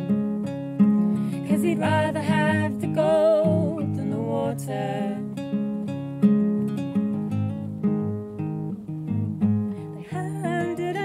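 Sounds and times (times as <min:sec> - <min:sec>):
acoustic guitar playing: 0:00.0 - 0:11.0
person singing: 0:01.4 - 0:05.3, 0:10.0 - 0:11.0.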